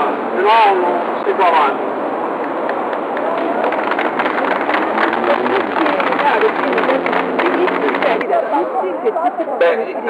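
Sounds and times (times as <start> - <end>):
faint voices: 0.0 - 10.0
vehicle engine running: 3.7 - 8.4.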